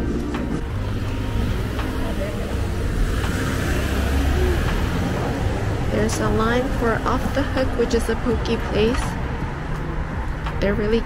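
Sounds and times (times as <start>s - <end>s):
car passing: 0.0s - 11.0s.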